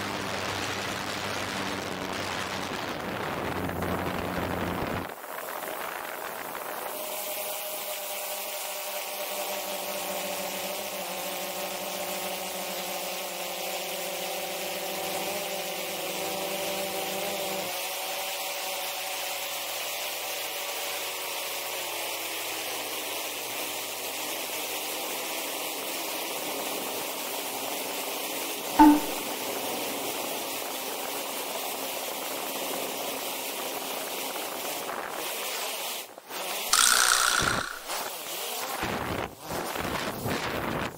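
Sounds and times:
sharp click: 0:28.8 - 0:29.3, 0:36.7 - 0:38.1.

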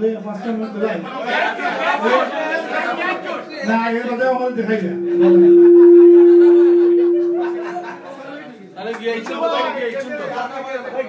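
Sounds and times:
people talking over one another: 0:00.4 - 0:06.2.

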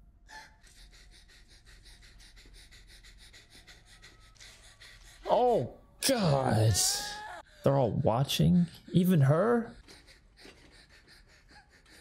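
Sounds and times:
woman panting rapidly: 0:00.3 - 0:05.3, 0:09.8 - 0:12.0.

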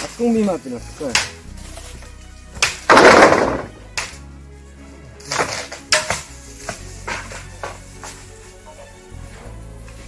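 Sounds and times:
bamboo crashing: 0:00.0 - 0:04.2, 0:05.2 - 0:08.9
background music: 0:00.0 - 0:10.0.

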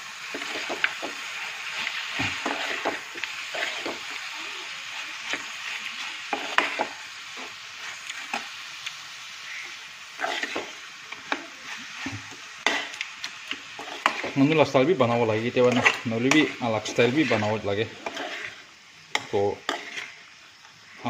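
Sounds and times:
food sizzling in a frying pan: 0:00.0 - 0:21.0
metal spoon scraping a pan: 0:00.2 - 0:08.5, 0:10.1 - 0:20.3.

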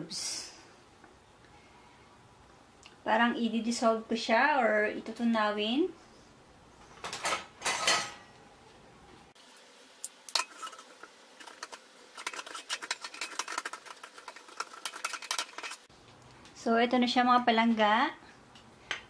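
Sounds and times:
metal spoon scraping ceramic bowl: 0:10.3 - 0:15.9.

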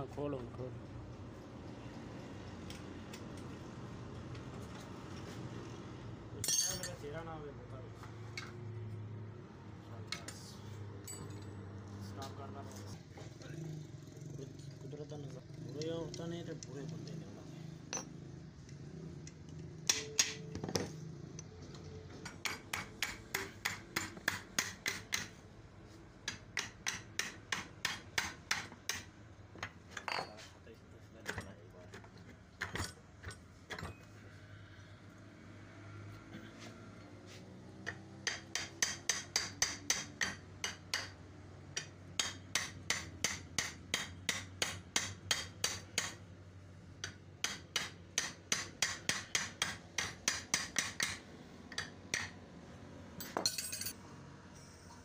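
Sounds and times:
hammer tapping on metal: 0:19.8 - 0:20.7, 0:22.2 - 0:25.4, 0:26.2 - 0:29.1, 0:37.9 - 0:46.2, 0:47.0 - 0:52.4.

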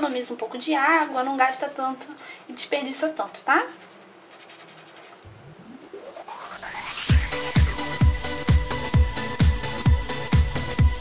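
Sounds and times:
brush scrubbing on glove: 0:01.0 - 0:08.4
electronic background music: 0:05.3 - 0:11.0.

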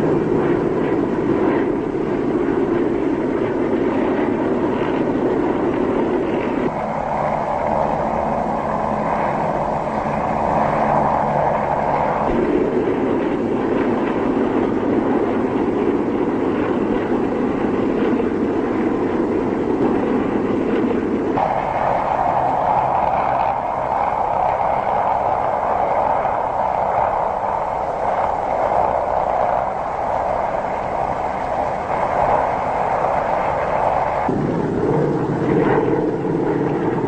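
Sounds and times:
propeller plane engines droning: 0:00.0 - 0:37.0.

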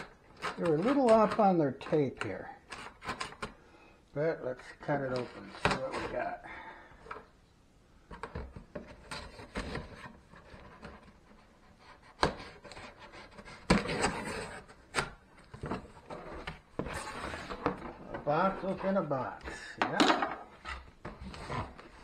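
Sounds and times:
cardboard scraping and rubbing: 0:00.0 - 0:01.9, 0:04.9 - 0:06.4, 0:08.7 - 0:19.5, 0:20.4 - 0:22.0.

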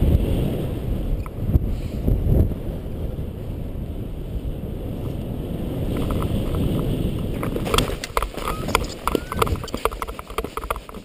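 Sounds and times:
rushing wind: 0:00.0 - 0:11.0
running footsteps on stony ground: 0:06.1 - 0:11.0.

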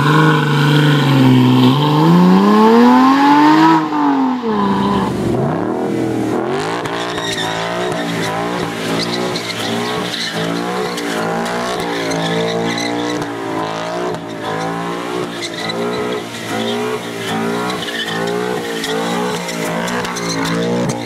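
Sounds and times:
car engine revving: 0:00.0 - 0:21.0
tyres squealing: 0:06.8 - 0:21.0.

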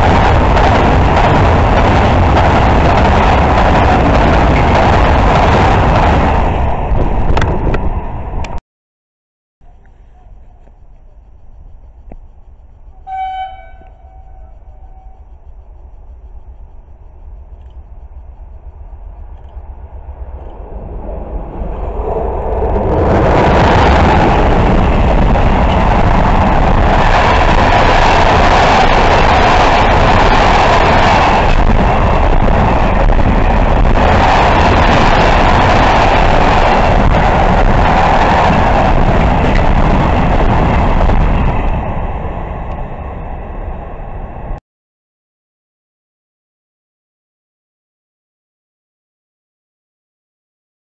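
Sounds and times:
freight train wheels on rails: 0:00.0 - 0:08.6, 0:09.6 - 0:44.6
locomotive horn blast: 0:13.0 - 0:15.2.

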